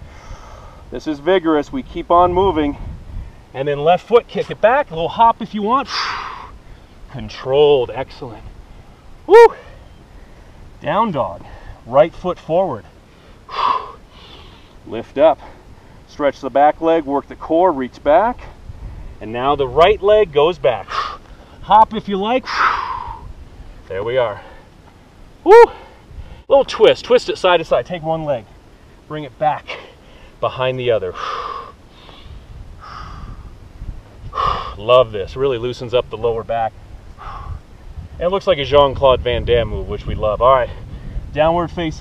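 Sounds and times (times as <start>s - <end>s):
man breathing out forcefully: 0.0s - 0.9s, 5.9s - 7.0s, 13.1s - 14.8s, 22.4s - 23.3s, 31.1s - 33.5s, 34.3s - 34.8s.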